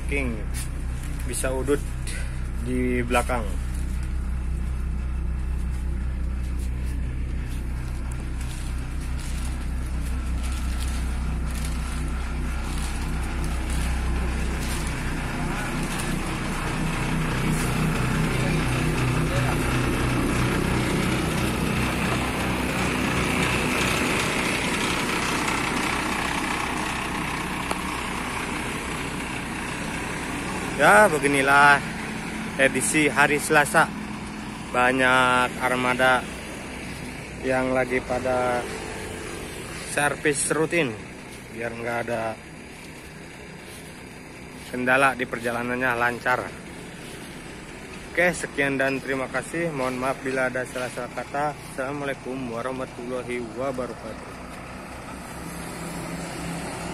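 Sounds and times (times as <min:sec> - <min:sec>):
bus diesel engine idling: 0:00.0 - 0:56.9.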